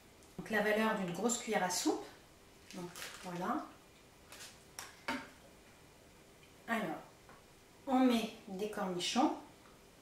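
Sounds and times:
pastry sheet and paper rustling: 2.6s - 3.7s, 4.3s - 4.6s.

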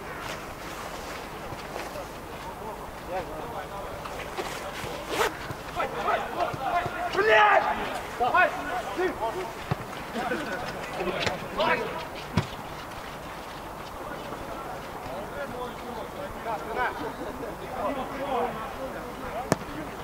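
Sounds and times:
players shouting: 3.5s - 12.7s
ball being kicked: 5.4s - 7.8s, 9.6s - 9.9s, 12.3s - 12.6s, 19.4s - 19.9s.

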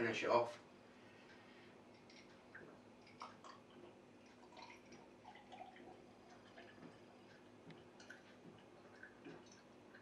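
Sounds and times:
person gulping liquid: 1.9s - 10.0s.

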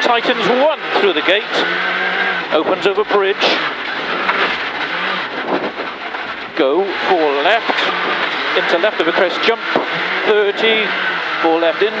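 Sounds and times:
car engine under load: 0.0s - 12.0s
gravel and road noise rumbling: 0.0s - 12.0s.

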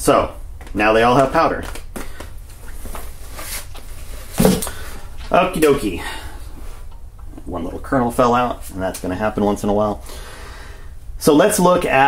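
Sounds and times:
steady low hum: 0.0s - 12.0s
soft rustling: 2.1s - 8.9s.

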